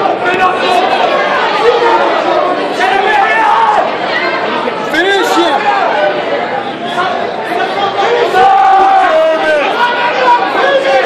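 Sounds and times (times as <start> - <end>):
crowd chatter and shouting: 0.0 - 11.0.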